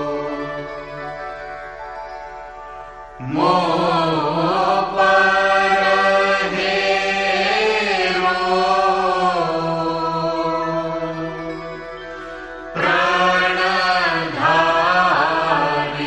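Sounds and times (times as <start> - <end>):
person chanting long held notes: 0.0 - 1.8, 3.1 - 16.0
steady drone: 0.0 - 16.0.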